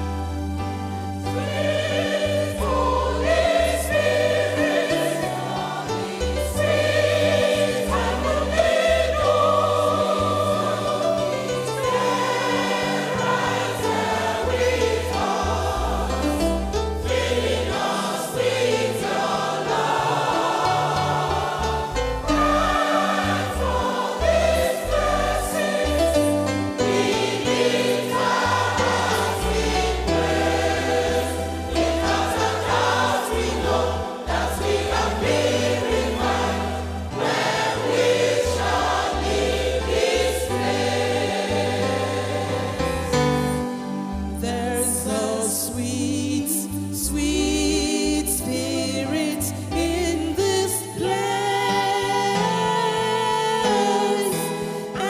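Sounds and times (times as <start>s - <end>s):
instrumental accompaniment: 0.0s - 51.1s
choir singing gospel: 0.0s - 55.0s.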